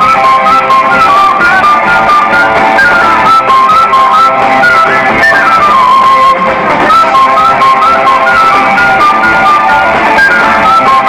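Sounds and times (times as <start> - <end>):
live band music: 0.0 - 11.0.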